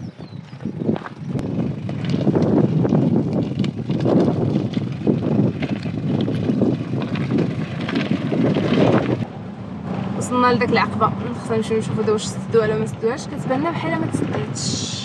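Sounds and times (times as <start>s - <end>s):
tyres on stones: 0.0s - 9.3s
vehicle knocks and rattles: 0.0s - 9.3s.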